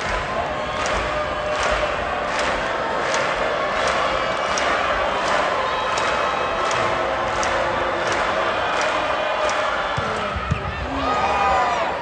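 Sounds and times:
arena crowd shouting and cheering: 0.0s - 12.0s.

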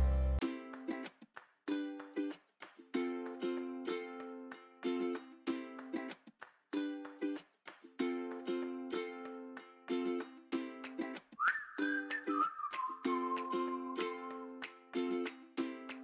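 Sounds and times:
whistled tune: 11.4s - 14.7s.

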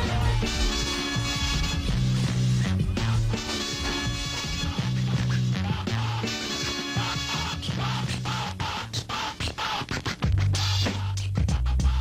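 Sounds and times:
deep heavy bass line: 0.0s - 12.0s
hip-hop beat: 0.0s - 12.0s
record scratching: 0.0s - 12.0s.

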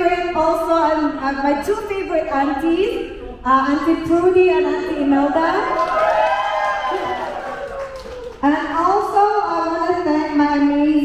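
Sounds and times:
woman speaking into a microphone: 0.0s - 5.8s, 8.4s - 11.0s.

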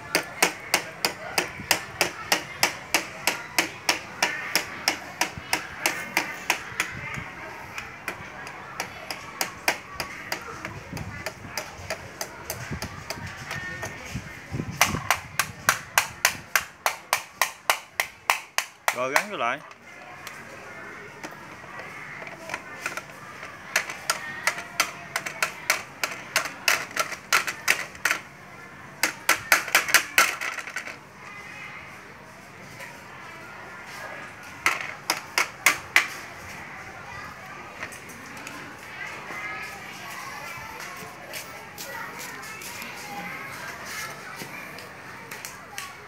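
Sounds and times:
toy hammer tapping: 0.1s - 7.0s, 14.8s - 19.7s, 23.7s - 28.2s, 29.0s - 30.9s.

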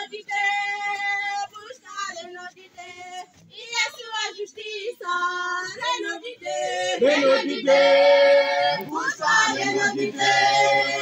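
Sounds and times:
woman singing gospel song: 0.0s - 7.7s, 8.3s - 11.0s.

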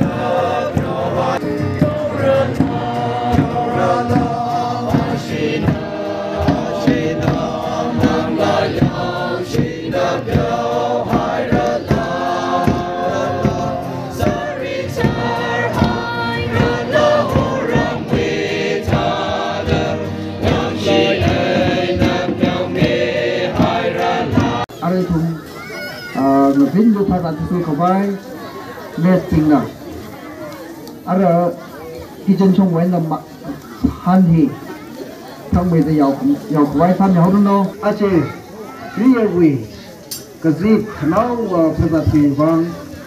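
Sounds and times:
drum beating: 0.0s - 27.9s, 28.6s - 37.8s
crowd singing a hymn: 0.0s - 43.0s.

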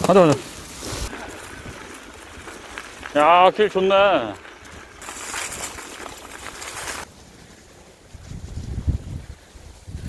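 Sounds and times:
bike tyres rolling over dry leaves: 0.0s - 10.0s
wind rumble on microphone: 8.1s - 10.0s.

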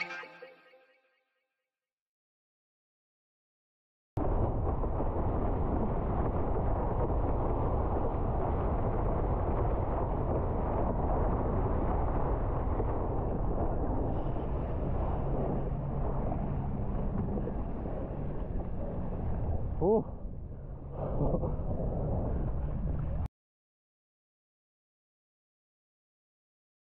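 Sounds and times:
water rushing along board: 4.2s - 23.2s
wind buffeting microphone: 4.2s - 23.3s.

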